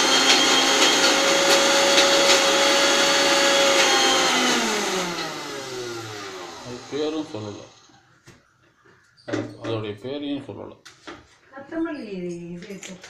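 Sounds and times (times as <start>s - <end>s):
mixer grinder running: 0.0s - 8.0s
motor winding down whine: 0.0s - 8.0s.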